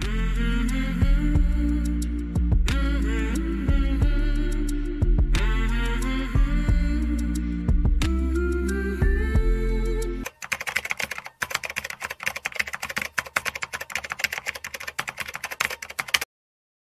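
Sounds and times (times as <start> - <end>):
music: 0.0 - 10.8
computer keyboard typing: 10.2 - 16.3.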